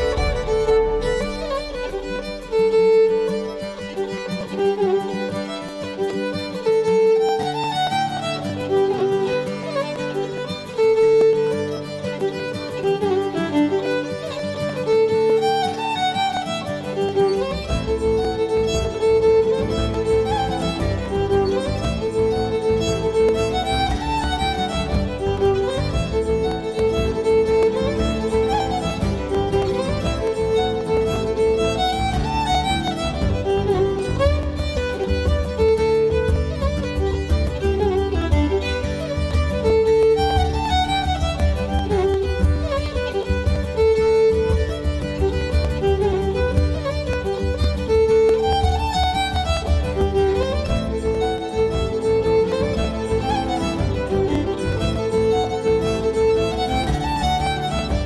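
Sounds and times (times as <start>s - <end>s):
instrumental backing track: 0.0s - 58.0s
violin melody: 0.0s - 58.0s.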